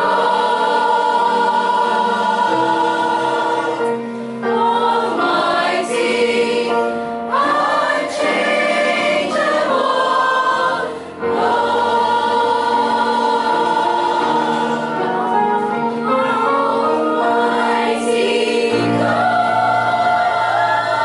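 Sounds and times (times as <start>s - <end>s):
mixed choir singing a hymn: 0.0s - 21.0s.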